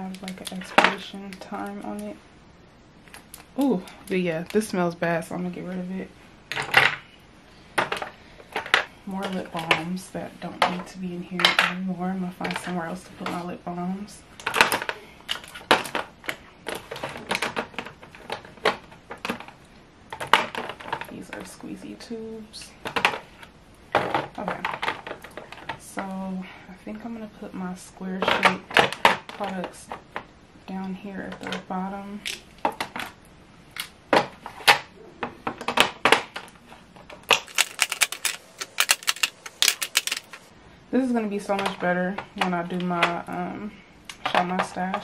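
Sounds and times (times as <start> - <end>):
plastic tubes clicking and clattering: 35.5 - 40.5.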